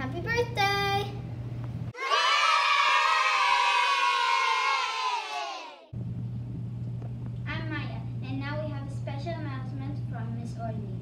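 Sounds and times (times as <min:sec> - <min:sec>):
children cheering and shouting: 0:02.0 - 0:05.9.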